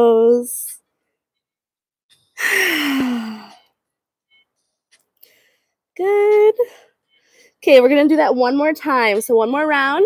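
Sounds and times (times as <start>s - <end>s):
woman sighing: 2.4s - 3.6s.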